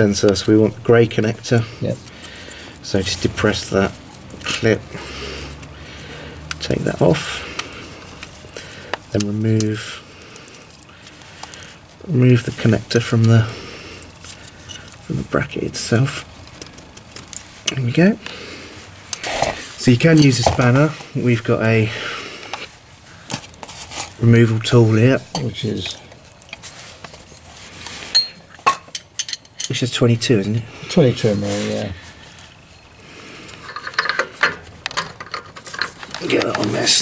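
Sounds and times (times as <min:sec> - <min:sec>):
faint rustling: 0:00.0 - 0:28.6, 0:29.4 - 0:37.0.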